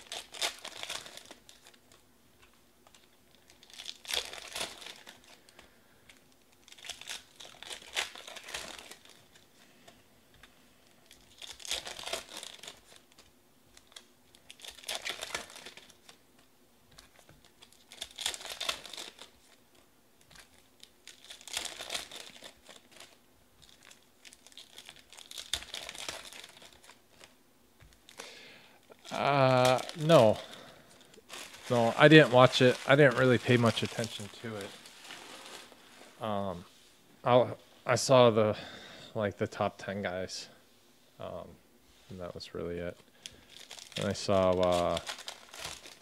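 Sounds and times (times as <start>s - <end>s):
foil wrappers crinkling and tearing: 0.0s - 9.6s, 10.4s - 36.2s, 43.0s - 46.0s.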